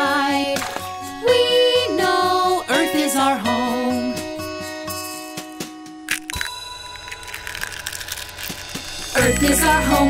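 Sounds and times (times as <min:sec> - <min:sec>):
soft backing music: 0:00.0 - 0:06.3, 0:08.6 - 0:10.0
cartoon eggshell cracking: 0:06.1 - 0:09.2.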